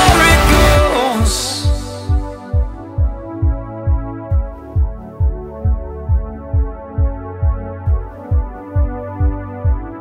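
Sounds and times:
kick drum beat: 0.0s - 10.0s
synthesizer chords: 0.0s - 10.0s.

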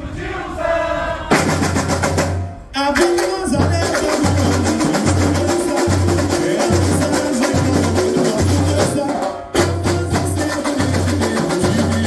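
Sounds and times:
samba drums and percussion: 1.2s - 12.0s.

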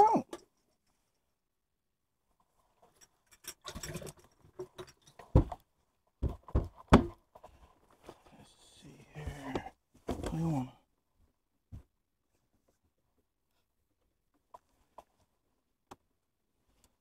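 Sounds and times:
knocks and thumps on boat deck: 6.2s - 7.2s.

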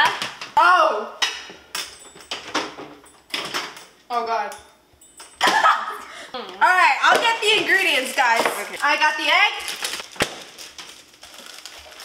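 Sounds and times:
kitchen utensils clattering: 1.3s - 4.0s.

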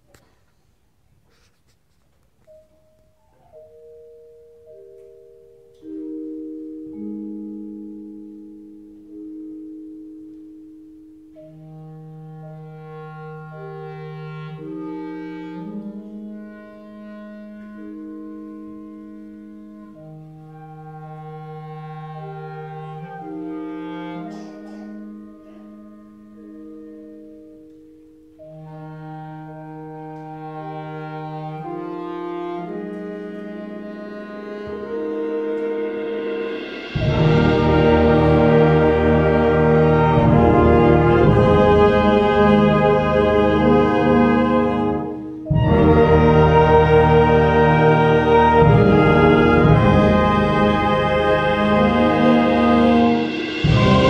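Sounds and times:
lower struck notes: 2.4s - 54.0s
concert band playing: 30.3s - 54.0s.

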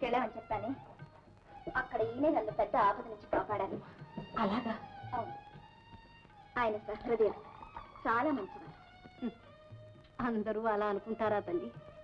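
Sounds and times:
faint background music: 0.0s - 12.0s
woman speaking: 6.6s - 8.7s, 10.2s - 11.8s.

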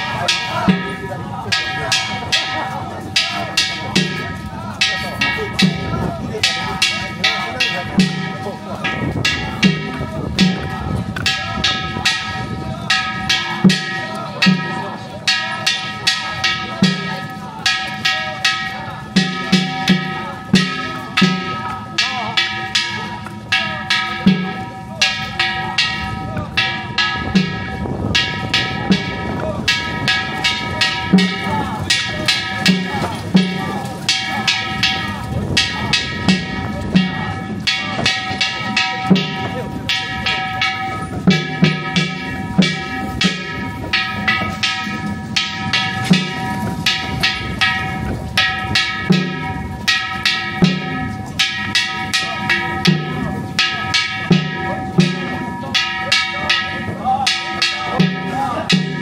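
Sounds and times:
festival drum beaten: 0.0s - 59.0s.

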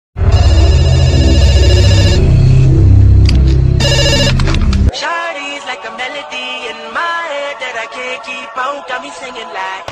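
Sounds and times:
bass-boosted pulsing beat: 0.2s - 4.9s
bright electronic melody: 0.2s - 4.9s.

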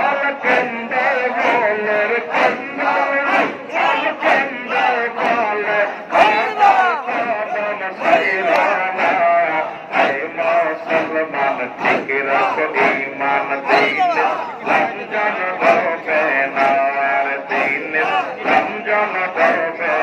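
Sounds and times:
men chanting over loudspeaker: 0.0s - 20.0s.

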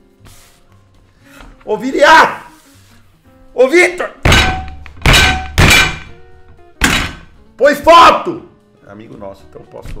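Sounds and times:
stick hitting wooden desk: 4.3s - 6.2s, 6.8s - 7.3s.

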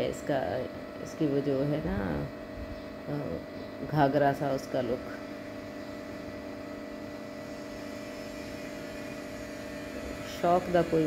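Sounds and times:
water pump motor humming: 0.0s - 11.0s.

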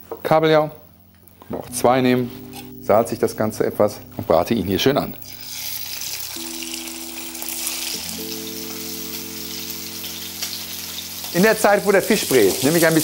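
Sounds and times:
soft background music chords: 0.0s - 13.0s
fish sizzling in hot oil: 5.2s - 13.0s.

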